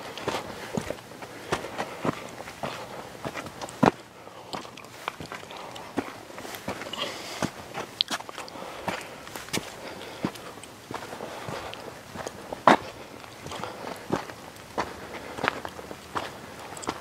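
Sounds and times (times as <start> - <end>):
footsteps on rocky dirt trail: 0.0 - 17.0.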